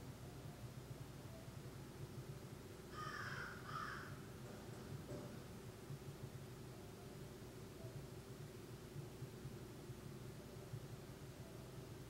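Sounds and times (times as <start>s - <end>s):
low room hum: 0.0s - 12.0s
faint bird calling: 2.9s - 4.2s.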